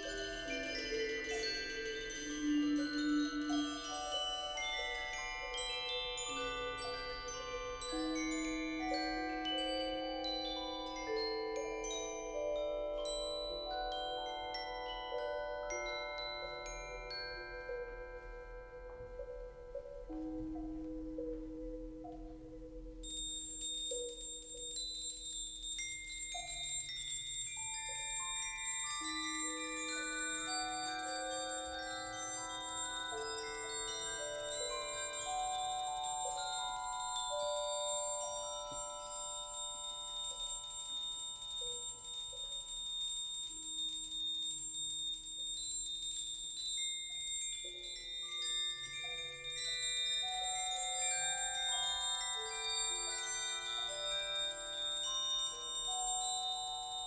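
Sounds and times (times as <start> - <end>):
high metal chimes shimmering: 0.0 - 19.3, 22.1 - 57.0
sustained bell-like notes: 0.0 - 57.0.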